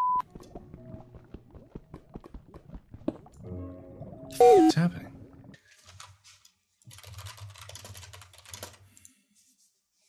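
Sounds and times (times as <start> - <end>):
computer keyboard keys clicking: 6.9 - 8.9.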